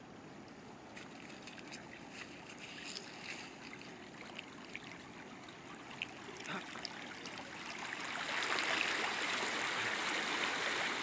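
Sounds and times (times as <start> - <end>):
flowing river water: 0.0 - 11.0
splashes of wading: 0.8 - 11.0.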